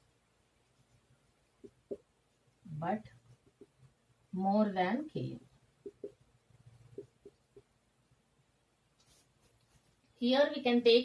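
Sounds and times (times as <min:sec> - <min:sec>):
faint rustle: 0:08.9 - 0:10.2.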